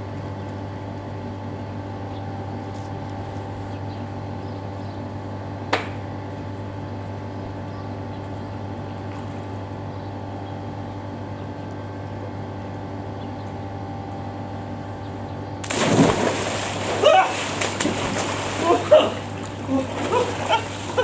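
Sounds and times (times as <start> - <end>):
steady mechanical hum: 0.0 - 21.0
splash into swimming pool: 15.6 - 21.0.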